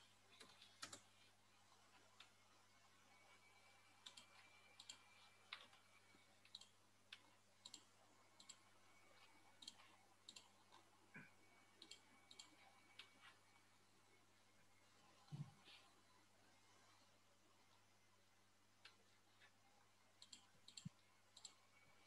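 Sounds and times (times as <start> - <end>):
computer mouse clicking: 0.3 - 1.3, 3.9 - 10.9, 11.7 - 13.3, 20.2 - 22.0.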